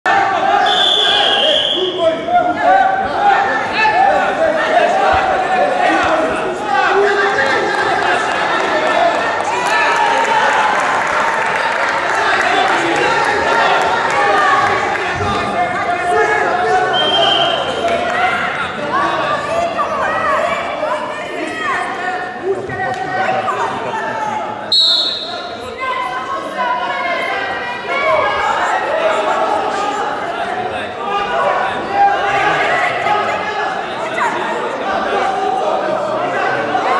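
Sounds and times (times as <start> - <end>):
crowd voices in a large hall: 0.0 - 36.9
referee's whistle: 0.6 - 2.0, 16.9 - 17.7, 24.7 - 25.6.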